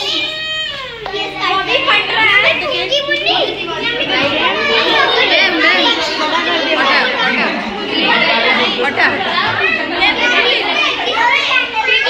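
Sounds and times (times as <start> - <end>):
crowd of children chattering: 0.0 - 12.0.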